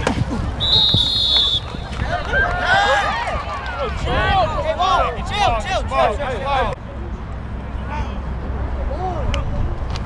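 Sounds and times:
referee's whistle blast: 0.6s - 1.9s
players shouting: 0.7s - 6.8s.

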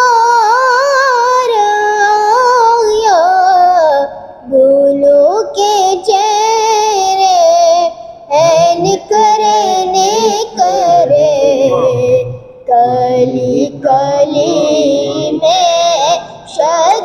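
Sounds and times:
boy singing unaccompanied: 0.0s - 17.0s.

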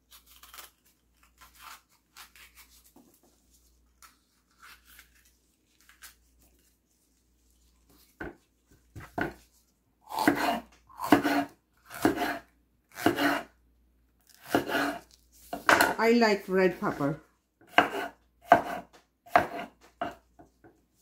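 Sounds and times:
knife slicing on wooden cutting board: 10.1s - 13.5s, 14.4s - 16.0s, 17.7s - 20.2s.

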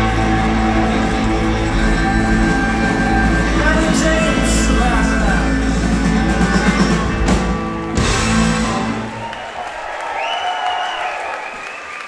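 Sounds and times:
live rock band playing: 0.0s - 9.5s
audience applause and cheering: 0.0s - 12.0s
crowd whistling: 0.0s - 12.0s.

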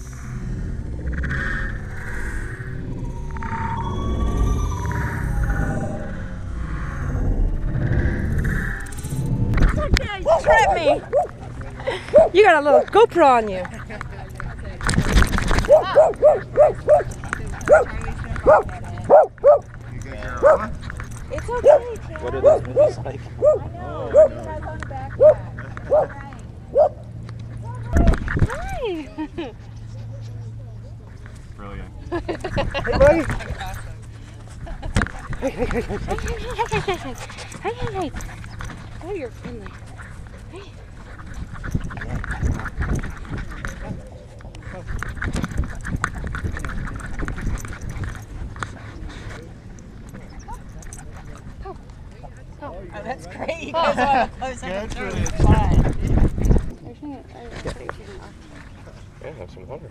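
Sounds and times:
low hum: 0.0s - 50.9s
people talking in background: 9.6s - 59.9s
dog sounds: 9.7s - 28.7s, 34.9s - 52.5s
dog barking: 10.2s - 11.4s, 12.1s - 12.9s, 15.6s - 19.7s, 20.4s - 20.8s, 21.5s - 24.5s, 25.2s - 27.0s.

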